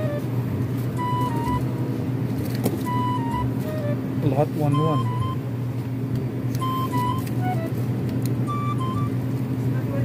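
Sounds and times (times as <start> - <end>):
sparse melody: 0.0 - 1.7, 2.8 - 5.4, 6.6 - 7.8, 8.4 - 9.2
refrigerator hum: 0.0 - 10.0.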